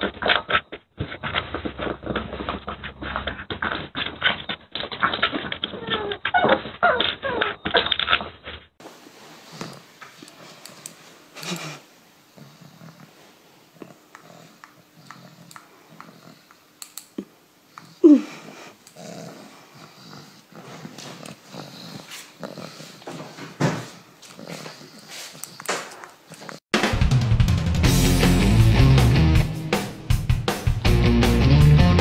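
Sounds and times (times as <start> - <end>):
dog whining: 0.0 - 8.5, 17.8 - 23.3
rock music with drums and guitar: 26.8 - 32.0.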